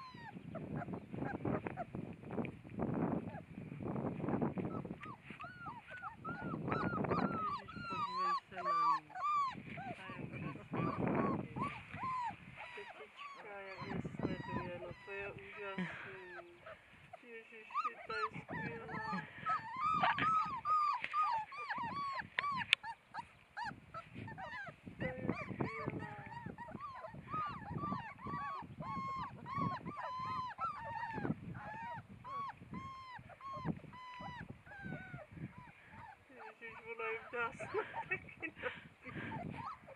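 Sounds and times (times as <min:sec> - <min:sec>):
puppies whimpering and whining: 0:00.0 - 0:02.1, 0:04.5 - 0:39.9.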